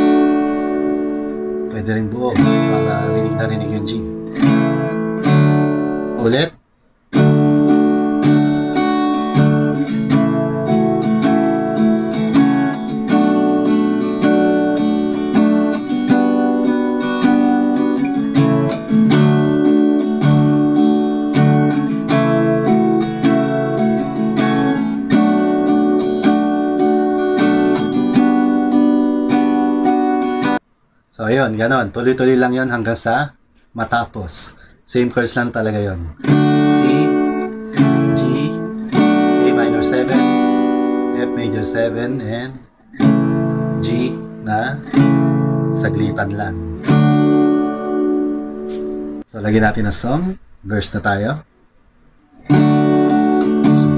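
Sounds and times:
acoustic guitar strumming: 0:00.0 - 0:06.4, 0:07.1 - 0:30.6, 0:36.2 - 0:49.3, 0:52.3 - 0:53.9.

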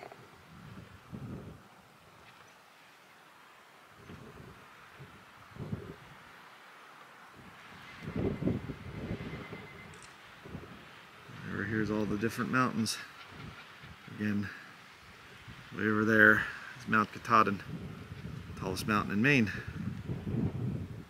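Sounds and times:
wind buffeting microphone: 0:00.0 - 0:02.4, 0:03.9 - 0:06.3, 0:07.3 - 0:21.0
faint hiss of wind: 0:00.0 - 0:21.0.

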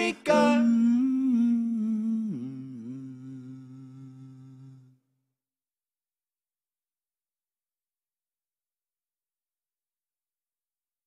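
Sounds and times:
hummed vocal note: 0:00.0 - 0:04.9.

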